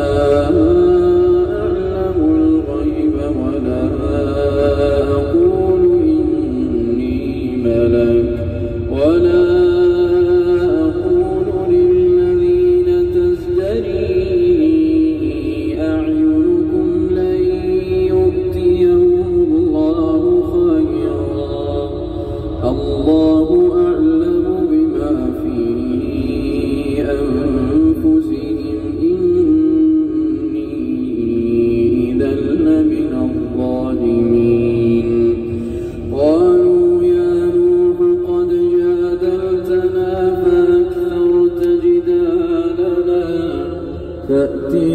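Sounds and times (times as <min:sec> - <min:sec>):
man chanting recitation: 0:00.0 - 0:44.9.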